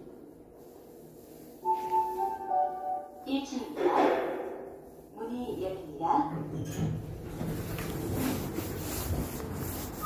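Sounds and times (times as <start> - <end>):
recorded announcement voice: 1.8 - 4.3, 5.2 - 6.5.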